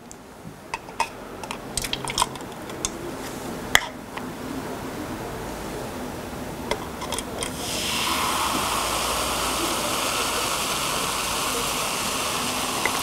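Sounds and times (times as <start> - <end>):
light clicks of pouring: 0.8 - 3.0
fizzing hiss of bubbles: 7.5 - 13.0.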